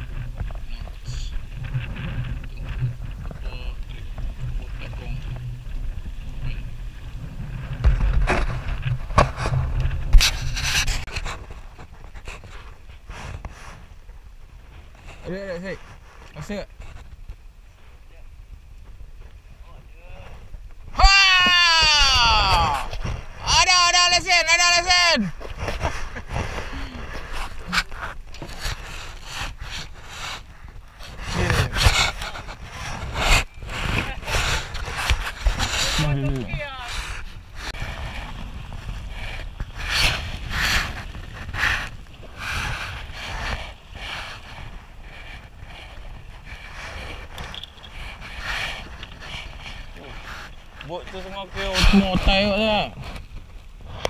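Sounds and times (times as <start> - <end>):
wind on microphone: 0.0 - 24.4, 25.0 - 54.0.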